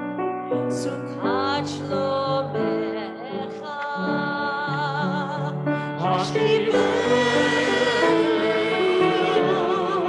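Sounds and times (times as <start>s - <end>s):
person singing with vibrato: 0.6s - 10.0s
sustained accompaniment: 5.9s - 10.0s.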